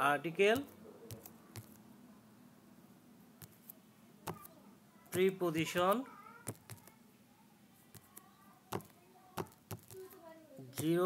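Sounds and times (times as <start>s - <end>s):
person speaking: 0.0s - 1.8s, 3.4s - 7.1s, 7.8s - 11.0s
fingertips tapping touchscreen: 0.5s - 1.8s, 3.4s - 4.5s, 5.2s - 7.0s, 7.9s - 10.2s.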